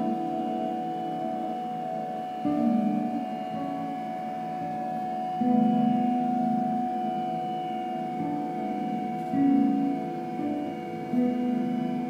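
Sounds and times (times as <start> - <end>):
harp guitar ringing tones: 0.0 - 12.0.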